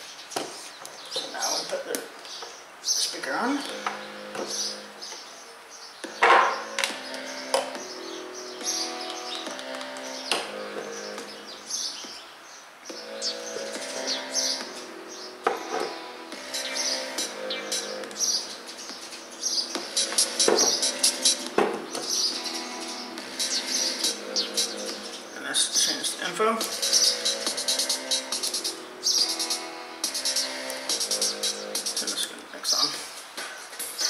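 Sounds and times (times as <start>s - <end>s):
song through small speaker: 3.4s - 5.3s, 5.9s - 34.0s.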